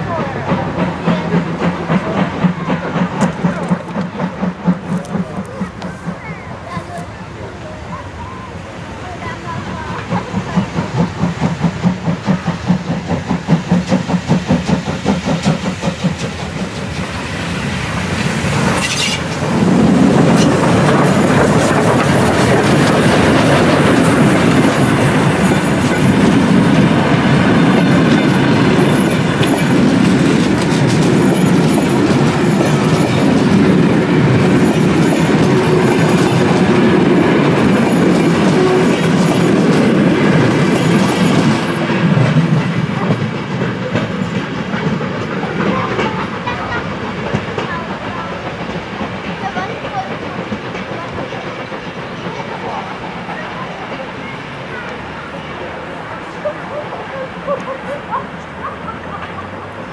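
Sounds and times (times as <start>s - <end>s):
steam locomotive exhaust beats: 0.0s - 59.9s
wheels clattering over rail joints: 9.3s - 59.9s.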